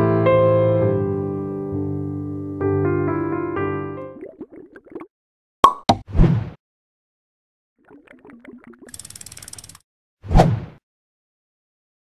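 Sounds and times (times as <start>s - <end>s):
ratchet-like clicking: 8.9s - 9.8s.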